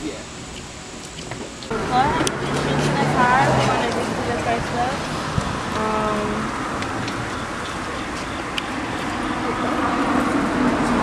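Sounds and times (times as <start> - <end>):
traffic noise: 1.0 - 11.0
people talking indistinctly: 1.7 - 10.4.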